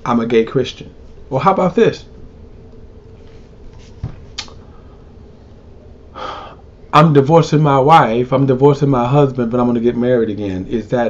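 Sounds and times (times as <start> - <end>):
man sharp breath in: 6.2 - 6.6.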